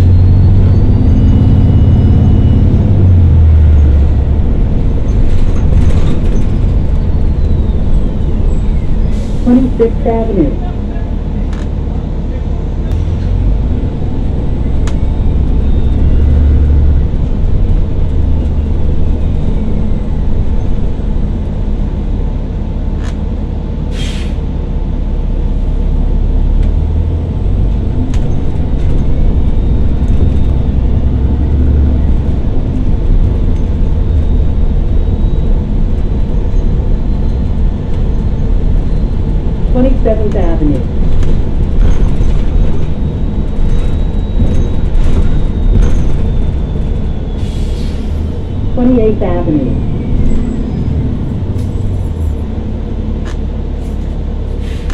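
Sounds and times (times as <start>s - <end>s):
bus engine rumble: 0.0s - 54.9s.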